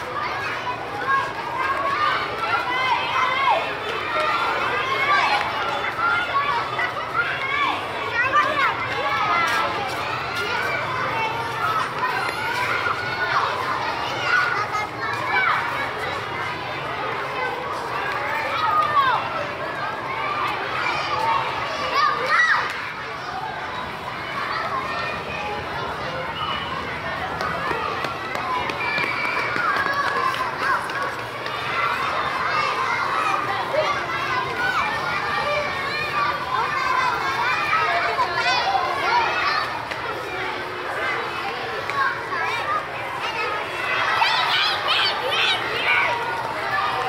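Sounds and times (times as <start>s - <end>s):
children chattering: 0.0s - 47.0s.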